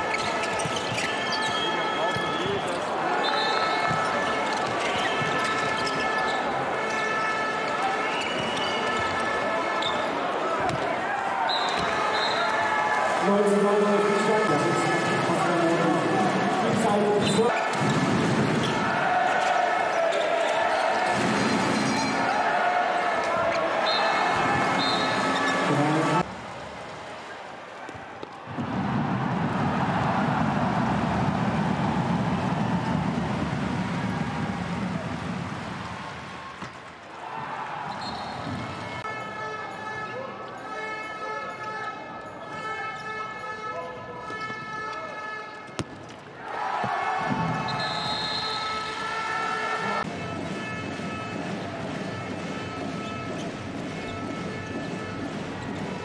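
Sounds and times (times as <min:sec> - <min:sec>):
crowd cheering and chanting: 0:00.0 - 0:40.0, 0:46.4 - 0:56.0.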